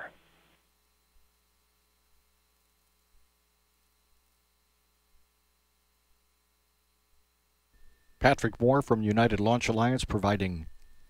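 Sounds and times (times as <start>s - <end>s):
faint line hum: 0.0s - 11.0s.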